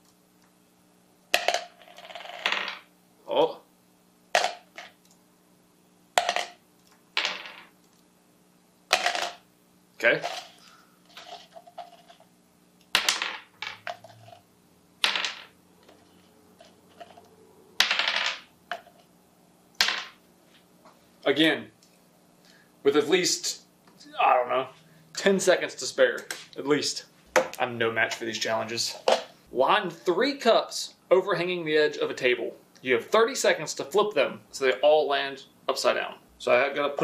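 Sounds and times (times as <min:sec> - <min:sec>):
dice rattling in plastic cup: 0:01.4 - 0:02.8, 0:08.9 - 0:09.4, 0:10.2 - 0:12.3
dice clacking on wooden table: 0:01.4 - 0:02.9, 0:04.4 - 0:05.0, 0:06.2 - 0:06.6, 0:07.2 - 0:07.7, 0:08.9 - 0:09.4, 0:12.9 - 0:14.4, 0:15.0 - 0:17.2, 0:17.8 - 0:19.0, 0:19.8 - 0:20.2.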